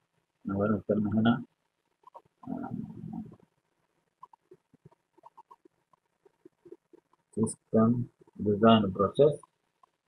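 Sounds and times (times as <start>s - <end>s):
man saying um: 0.5s - 1.4s, 2.5s - 3.3s, 7.4s - 9.4s.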